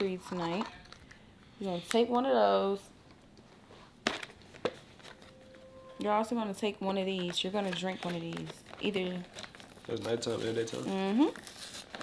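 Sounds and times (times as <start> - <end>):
medicine packets clicking: 7.0 - 12.0.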